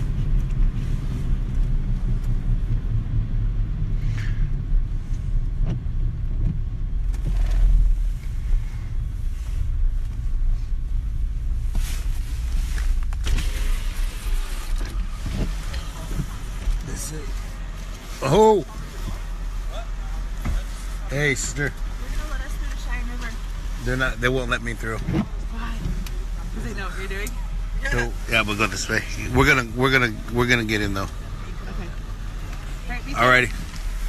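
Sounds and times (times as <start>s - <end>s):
car engine and road rumble: 0.0s - 34.0s.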